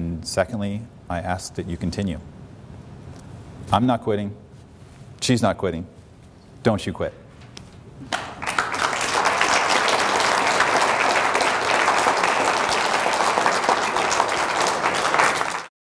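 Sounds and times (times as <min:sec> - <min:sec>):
audience applauding: 0:08.1 - 0:15.7.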